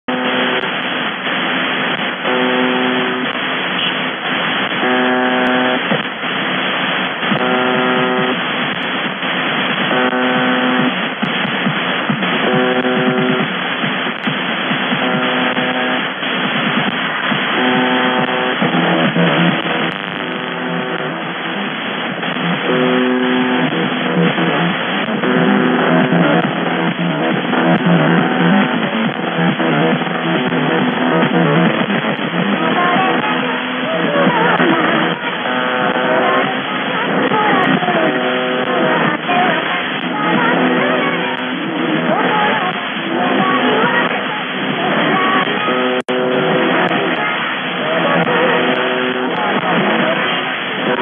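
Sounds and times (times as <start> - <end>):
coarse radio buzz tone: 0.0 - 51.0
static hiss: 0.0 - 51.0.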